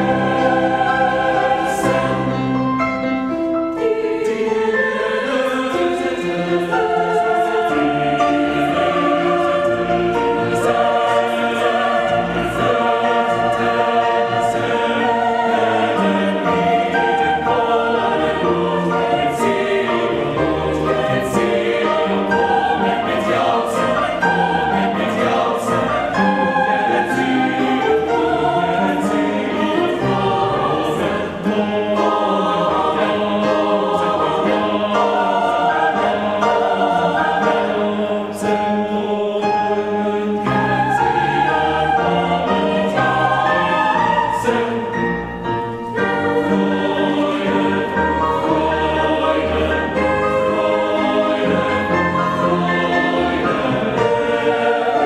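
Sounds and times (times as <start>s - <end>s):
grand piano accompaniment: 0.0s - 55.0s
mixed choir singing: 0.0s - 55.0s.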